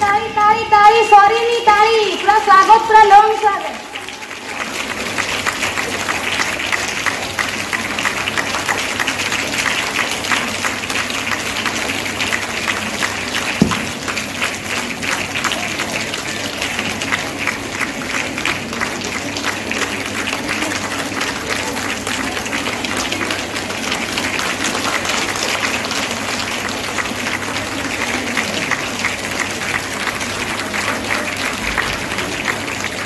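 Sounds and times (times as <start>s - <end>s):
audience applauding: 3.4s - 33.0s.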